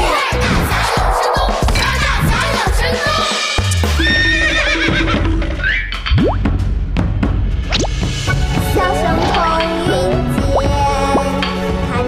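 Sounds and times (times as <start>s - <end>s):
background music: 0.0s - 12.0s
cartoon horse whinny: 4.0s - 5.8s.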